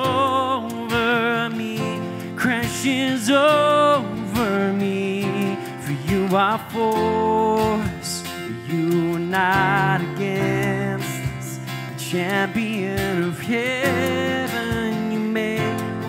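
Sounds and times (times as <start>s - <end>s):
man singing worship song: 0.0s - 16.0s
strummed acoustic guitar: 0.0s - 16.0s.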